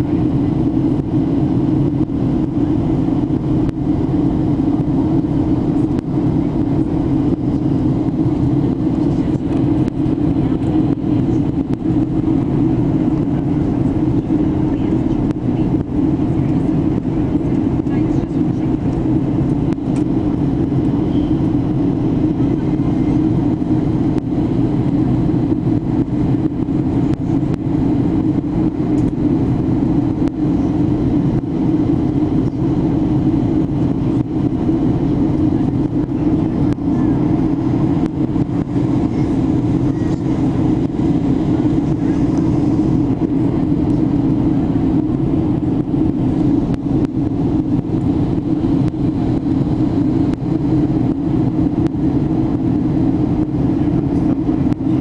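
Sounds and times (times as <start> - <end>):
airliner cabin engine hum: 0.0 - 55.0.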